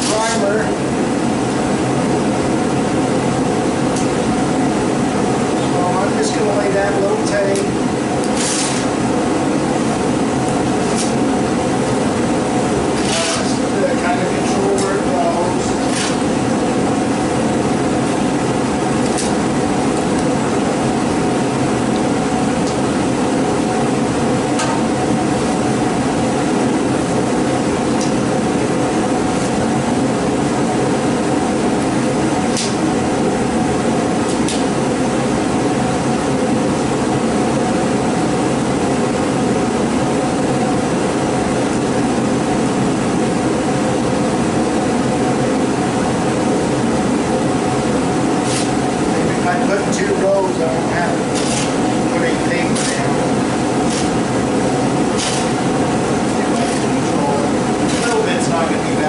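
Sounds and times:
loud mechanical drone: 0.0s - 59.0s
masking tape ripping: 13.0s - 13.6s.

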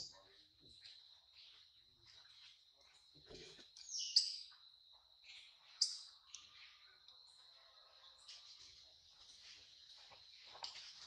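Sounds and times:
soft rustle: 8.2s - 11.0s.

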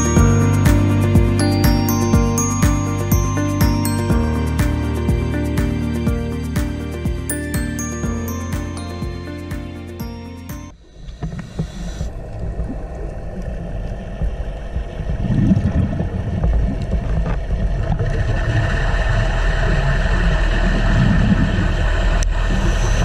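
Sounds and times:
underwater rumble of water: 10.8s - 23.0s.

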